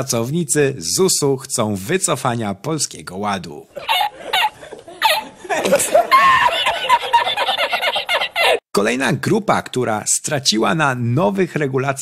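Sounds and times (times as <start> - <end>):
man laughing: 3.7 - 8.7.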